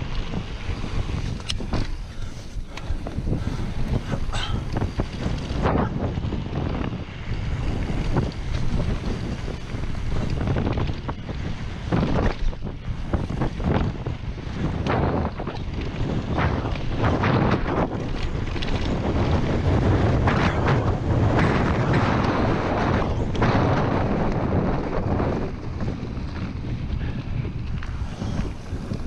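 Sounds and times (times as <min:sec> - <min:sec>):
bike knocks and rattles: 0:00.0 - 0:29.0
bike tyres rolling on dirt: 0:00.0 - 0:29.0
wind buffeting microphone: 0:00.0 - 0:29.0.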